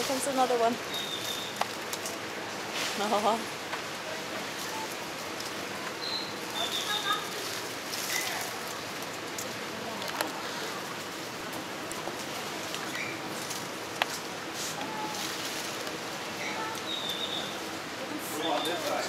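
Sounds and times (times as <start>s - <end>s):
steady rustling hiss: 0.0s - 19.0s.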